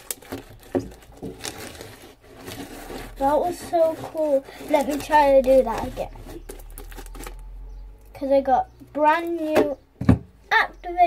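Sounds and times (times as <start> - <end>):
sticky clicks and crackles: 0.0 - 7.4.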